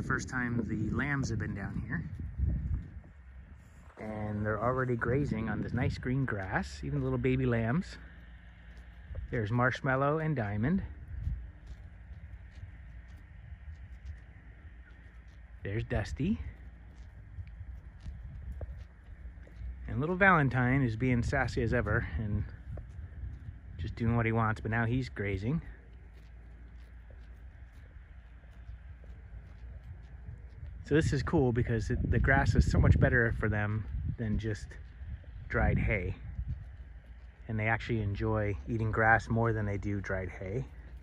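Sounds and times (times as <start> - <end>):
low steady rumble: 0.0 - 41.0
sheep tearing and chewing grass: 1.8 - 32.1, 33.0 - 41.0.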